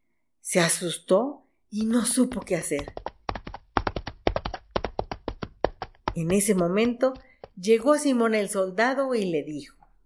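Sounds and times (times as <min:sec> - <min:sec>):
fast sharp taps: 0:01.8 - 0:07.9.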